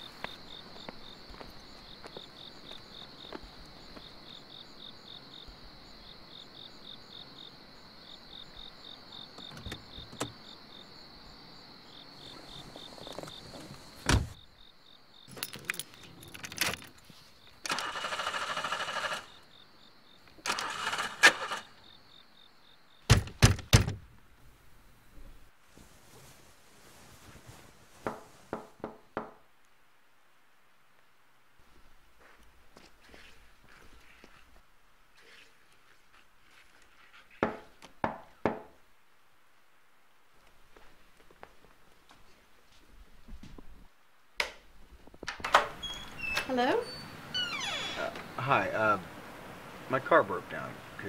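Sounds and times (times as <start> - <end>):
crickets chirping: 0.0 - 41.8, 43.2 - 51.0
faint shuffling movement: 12.1 - 14.4, 24.4 - 28.8, 30.9 - 37.4, 40.3 - 44.0
car starter cranking: 17.6 - 19.3, 20.5 - 21.7
loud knocks on a door: 23.1 - 24.0, 28.0 - 29.4, 37.4 - 38.7.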